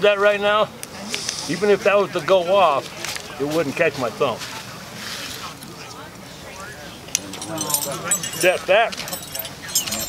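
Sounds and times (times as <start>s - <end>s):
chain clinking: 7.1s - 10.0s
metal trap clicking: 7.1s - 10.0s.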